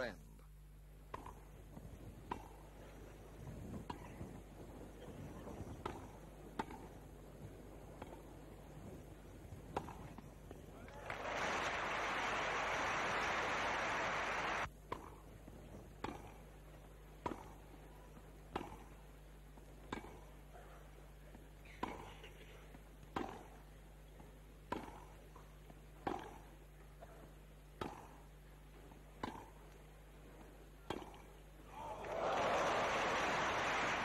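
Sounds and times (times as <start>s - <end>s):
tennis ball hit by rackets: 1.1s - 1.4s, 2.2s - 2.6s, 5.8s - 7.0s, 8.0s - 8.3s, 9.7s - 10.3s, 14.9s - 15.2s, 16.0s - 16.4s, 17.2s - 17.6s, 18.5s - 19.0s, 19.7s - 20.3s, 21.6s - 22.4s, 23.0s - 23.7s, 24.7s - 27.1s, 27.8s - 28.3s, 29.2s - 29.8s, 30.4s - 31.4s
crowd applause: 10.9s - 14.7s, 31.7s - 34.0s.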